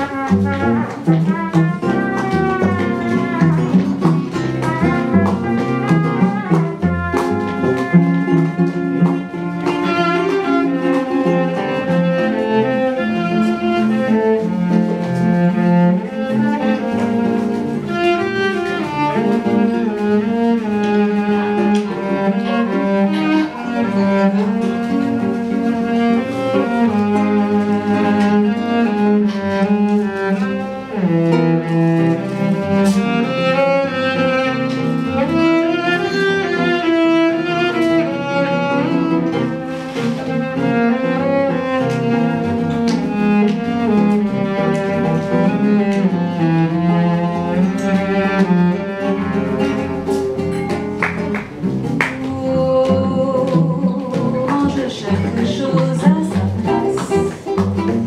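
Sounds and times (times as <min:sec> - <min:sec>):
cello melody: 0:00.0 - 0:58.0
classical guitar: 0:00.0 - 0:58.0.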